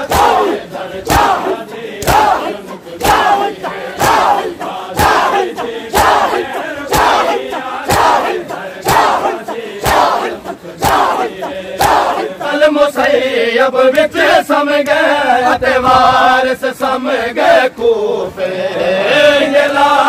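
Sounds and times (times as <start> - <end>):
palms slapping bare chests: 0.0 - 12.2
crowd shouting together: 0.0 - 16.4.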